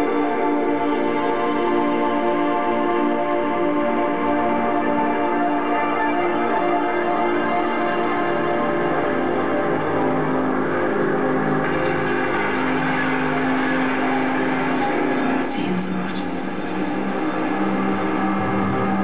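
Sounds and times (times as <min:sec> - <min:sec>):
steady low held note: 0:00.0 - 0:19.0
synthesizer chords with bell tones: 0:00.0 - 0:19.0.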